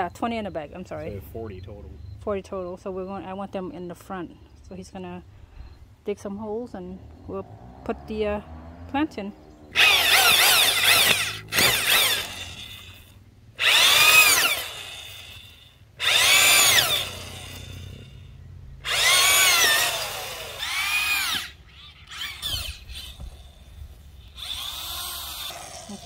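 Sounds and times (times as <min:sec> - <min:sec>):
auger boring into soil: 0:09.7 - 0:26.0
power drill whining: 0:09.7 - 0:26.0.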